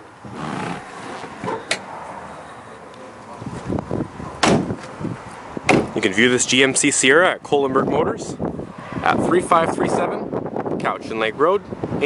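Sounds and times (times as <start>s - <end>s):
truck door thumping shut: 4.4s - 4.9s, 5.6s - 6.0s.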